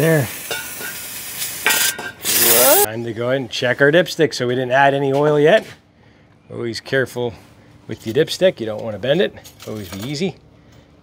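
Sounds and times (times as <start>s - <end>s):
aerosol spray hissing: 0.3s - 2.9s.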